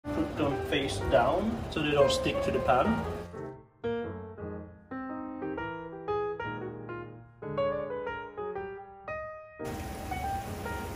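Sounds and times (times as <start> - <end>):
piano music: 0.0 - 10.9
steady hiss: 9.7 - 10.9.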